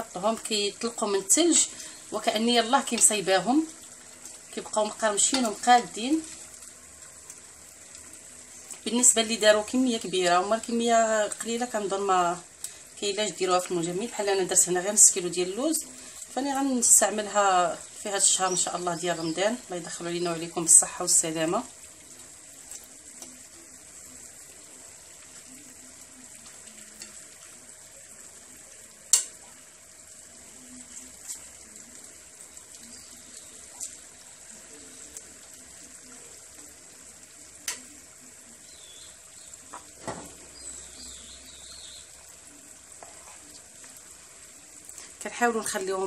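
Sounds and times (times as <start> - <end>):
pastries sizzling in oil: 0.0 - 46.0.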